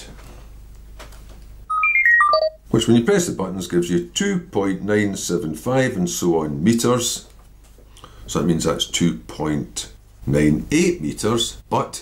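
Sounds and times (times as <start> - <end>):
calculator key beeps: 1.7 - 2.5.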